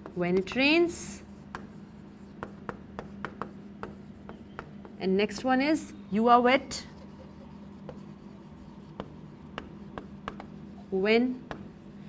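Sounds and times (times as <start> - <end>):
chalk writing on chalkboard: 0.0 - 5.2, 6.7 - 12.0
faint steady hum: 0.0 - 12.0.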